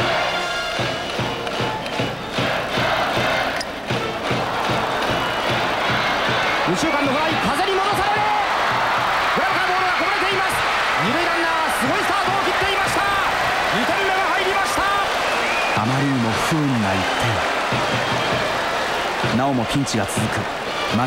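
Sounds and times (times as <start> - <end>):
crowd chanting: 0.0 - 0.9, 1.9 - 6.7, 10.6 - 15.8, 17.4 - 19.5
music: 0.0 - 11.2, 11.8 - 21.0
stadium crowd noise: 0.0 - 21.0.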